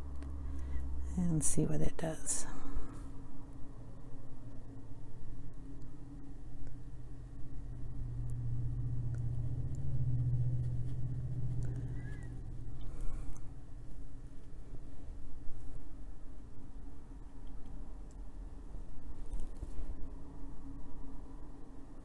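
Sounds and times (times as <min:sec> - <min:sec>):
low rumble: 0:06.9 - 0:15.9.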